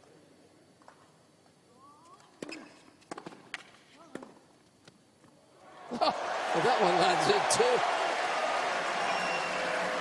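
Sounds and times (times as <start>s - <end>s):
crowd noise: 5.7s - 10.0s.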